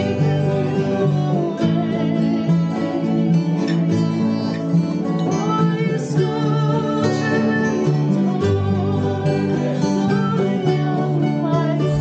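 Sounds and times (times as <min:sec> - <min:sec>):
acoustic guitars playing folk ballad: 0:00.0 - 0:12.0.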